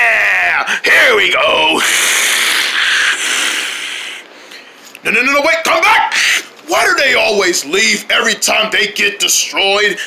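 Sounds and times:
breathy whooshing hiss: 0:01.8 - 0:04.8.

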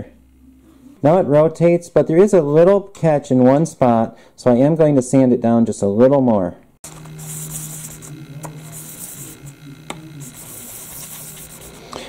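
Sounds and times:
electrical hum: 0:00.0 - 0:02.5, 0:06.7 - 0:12.0
metal rubbed on sandpaper: 0:06.8 - 0:11.9.

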